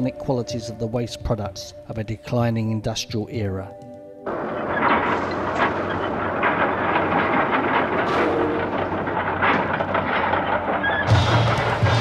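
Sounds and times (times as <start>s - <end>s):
scrap metal clanking and rattling: 4.3s - 12.0s
steady machinery rumble: 4.3s - 12.0s.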